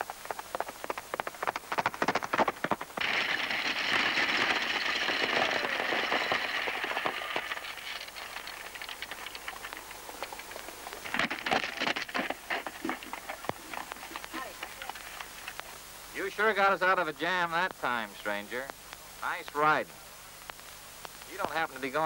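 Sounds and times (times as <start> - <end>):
stagecoach rattling: 0.0 - 15.6
galloping horse hoofbeats: 0.0 - 15.7.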